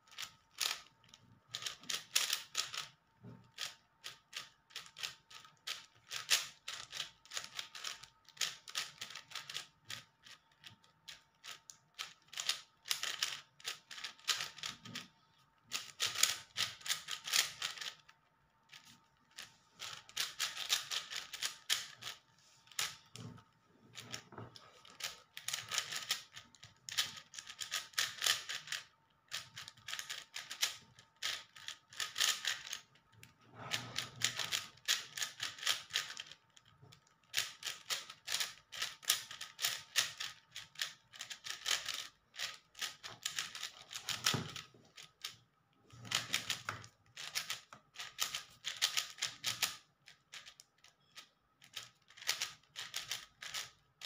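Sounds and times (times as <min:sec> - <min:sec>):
speed cube clicking and rattling: 0:00.1 - 0:23.2, 0:23.9 - 0:45.4, 0:46.0 - 0:54.0.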